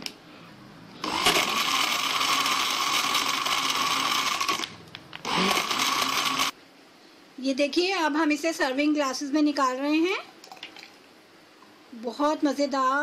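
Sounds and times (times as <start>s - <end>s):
blender running: 1.0s - 6.6s.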